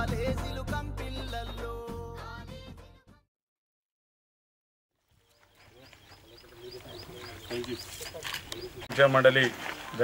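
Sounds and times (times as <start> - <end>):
men talking: 5.5 - 10.0.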